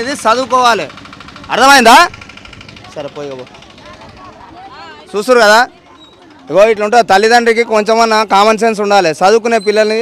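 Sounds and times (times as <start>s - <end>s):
vehicle engine idling: 0.0s - 9.2s
crowd talking: 0.0s - 10.0s.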